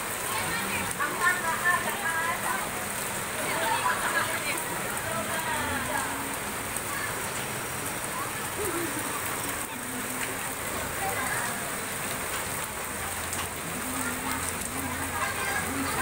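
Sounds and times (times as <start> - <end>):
faint voices: 0.0 - 16.0
rain on concrete street: 0.0 - 16.0.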